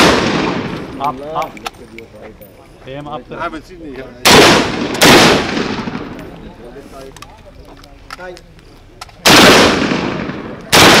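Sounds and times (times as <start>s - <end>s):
rifle gunshots with echo: 0.0s - 1.1s, 4.2s - 6.2s, 9.2s - 11.0s.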